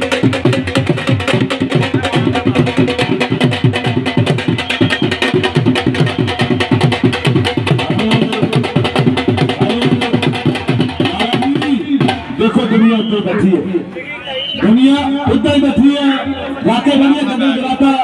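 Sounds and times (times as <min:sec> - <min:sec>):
drums beaten fast: 0:00.0 - 0:13.9, 0:14.6 - 0:18.0.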